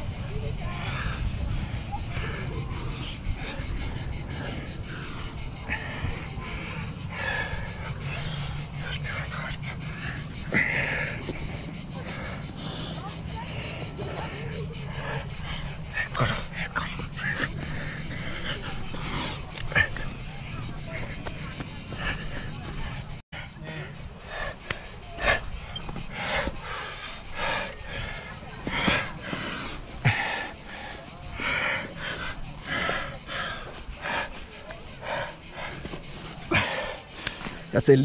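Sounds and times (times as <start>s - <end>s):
insects chirring: 0.0s - 38.0s.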